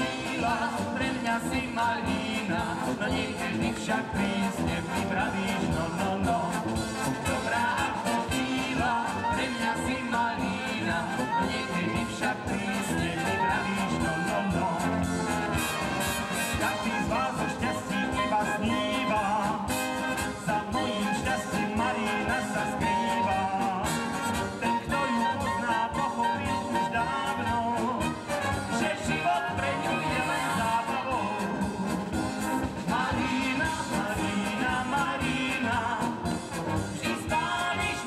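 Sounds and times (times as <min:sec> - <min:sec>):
brass band playing folk dance tune: 0:00.0 - 0:38.0
drums: 0:00.0 - 0:38.0
trumpets leading: 0:00.0 - 0:38.0
tuba: 0:00.0 - 0:38.0.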